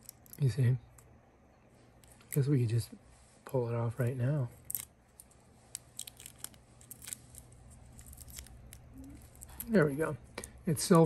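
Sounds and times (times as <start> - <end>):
packaging crinkling and clicks: 4.6 - 10.6.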